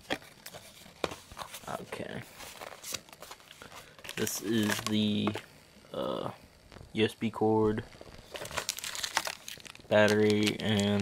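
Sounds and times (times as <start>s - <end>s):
plastic packaging crinkling: 0.0s - 5.4s, 7.8s - 11.0s.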